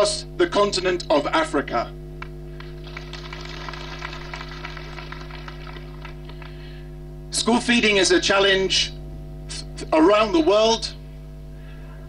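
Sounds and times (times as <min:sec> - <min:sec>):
low electrical hum: 0:00.0 - 0:12.0
crowd applauding: 0:02.6 - 0:06.8.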